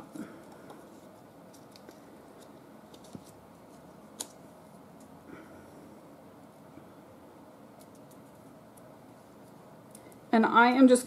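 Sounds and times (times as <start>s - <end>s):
paper strip crinkling: 0.5s - 4.4s.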